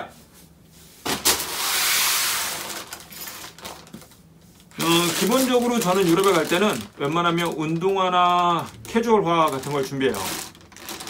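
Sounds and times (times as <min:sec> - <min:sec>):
plastic bag rustling: 0:00.8 - 0:11.0
small handling sounds: 0:02.7 - 0:11.0.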